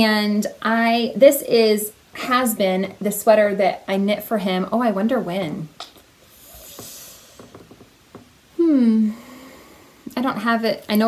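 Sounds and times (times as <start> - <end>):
breath out through nose: 6.3 - 7.5.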